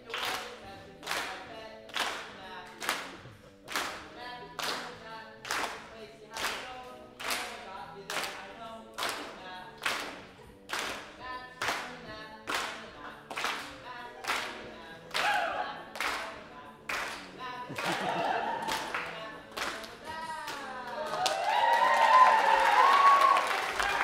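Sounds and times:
unaccompanied singing voices: 0:00.0 - 0:24.0
hand claps: 0:00.1 - 0:24.0.

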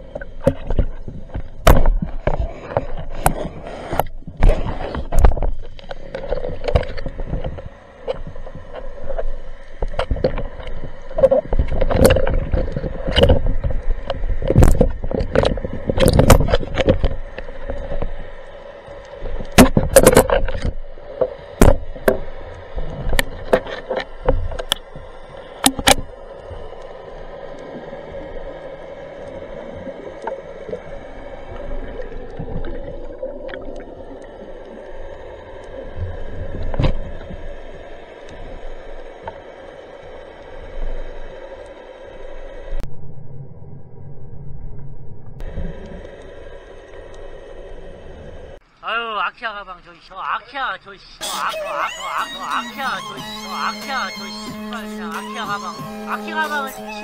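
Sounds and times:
water rushing underwater: 0:00.0 - 0:48.6
sharp knocks underwater: 0:00.1 - 0:08.8, 0:09.8 - 0:18.1, 0:19.2 - 0:25.0, 0:25.6 - 0:26.1.

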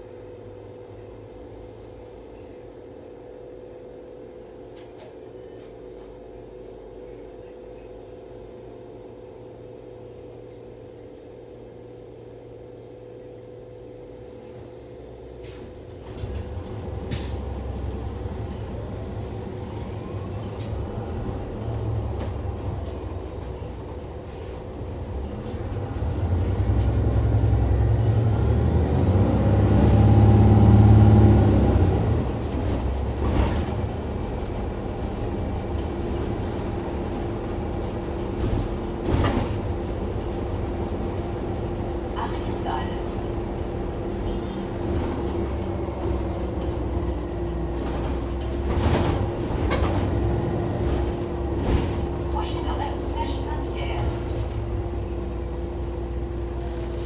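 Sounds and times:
bus drive whine and hum: 0:00.0 - 0:57.0.

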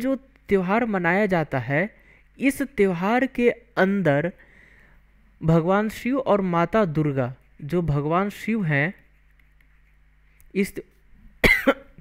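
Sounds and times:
cough: 0:11.4 - 0:12.0.

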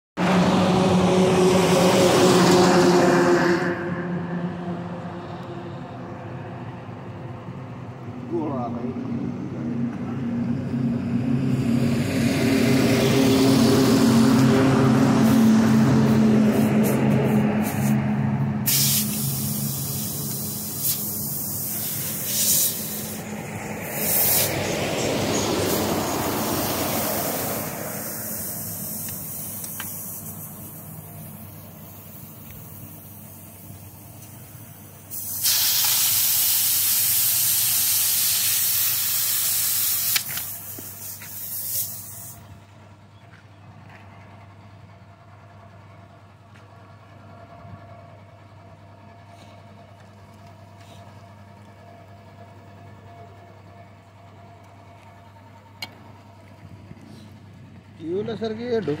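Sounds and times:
compressed air hissing from hose: 0:16.6 - 0:18.0, 0:18.6 - 0:24.6, 0:26.4 - 0:42.4.

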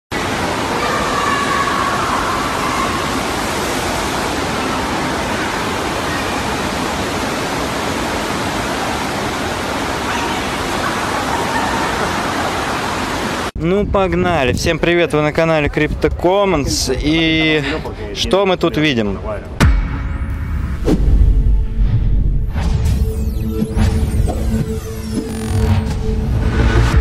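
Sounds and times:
water rushing: 0:00.1 - 0:13.6.

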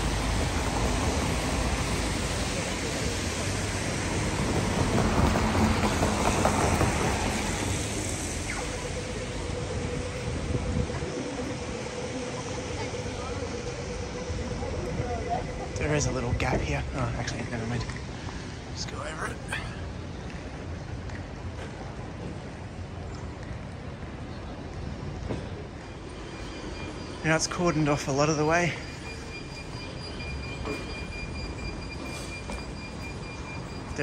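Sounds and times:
traffic on wet street: 0:00.0 - 0:34.0.

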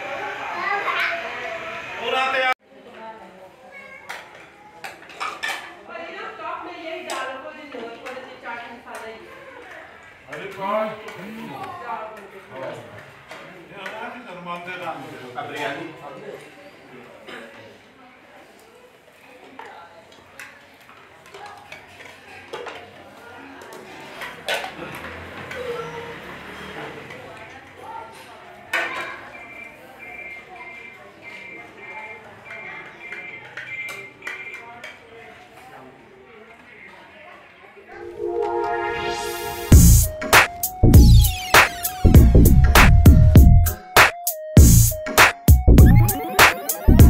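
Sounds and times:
group chatter: 0:00.0 - 0:14.2, 0:14.9 - 0:42.4, 0:45.0 - 0:47.0
faint background voices: 0:00.0 - 0:39.3.

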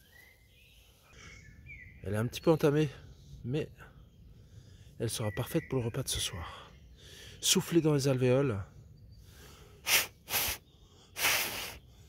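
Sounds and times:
person blowing puffs of breath: 0:09.3 - 0:12.0.

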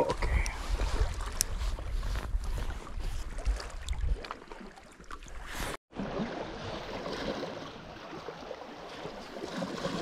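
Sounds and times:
wind rumbling on microphone: 0:00.0 - 0:04.4.

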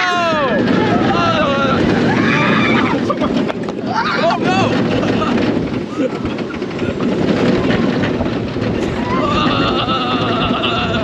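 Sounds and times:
riders crying out: 0:00.0 - 0:07.1, 0:08.8 - 0:11.0
roller coaster train rumbling: 0:00.0 - 0:11.0
wind rushing over microphone: 0:00.0 - 0:11.0.

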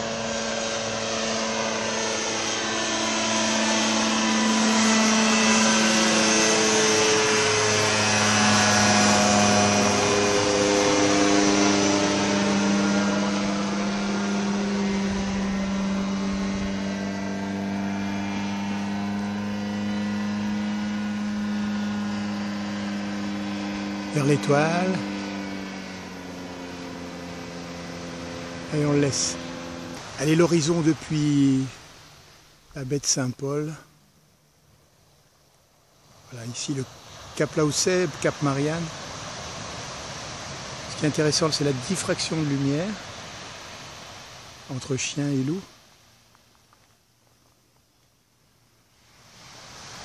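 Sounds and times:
microlight propeller engine droning: 0:00.0 - 0:50.0.

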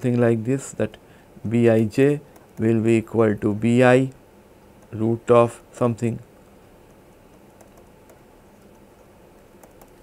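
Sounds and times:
room hiss: 0:00.0 - 0:10.0
stylus tapping on tablet: 0:06.8 - 0:10.0.

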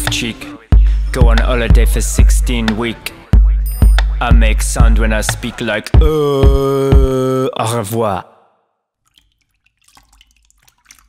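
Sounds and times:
water dripping: 0:08.9 - 0:11.0
light water splashing: 0:09.0 - 0:11.0.

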